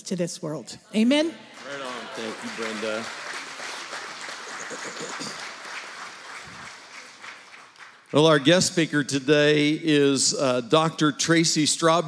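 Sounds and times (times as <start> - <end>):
congregation applauding: 1.3 - 9.0.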